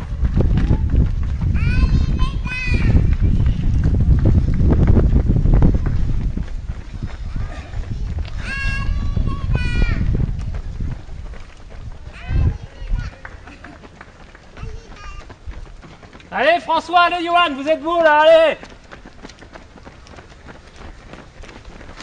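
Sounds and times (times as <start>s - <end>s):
wind rumble on microphone: 0.0s - 16.2s.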